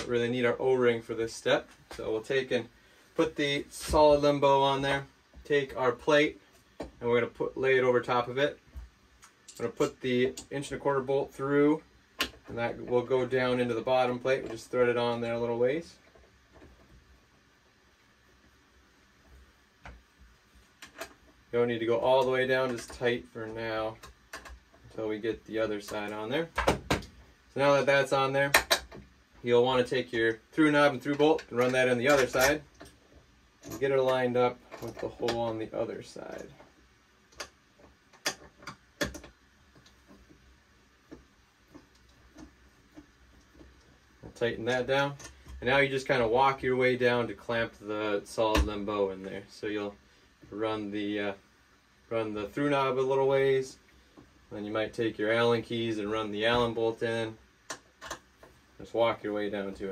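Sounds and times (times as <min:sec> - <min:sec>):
faint clicks of parts handled: 0:31.0 - 0:40.4, 0:41.0 - 0:45.6.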